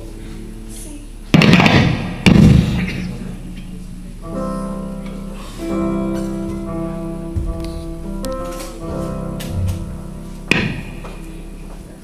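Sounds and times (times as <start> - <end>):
guitar chords ringing: 0.0 - 12.0.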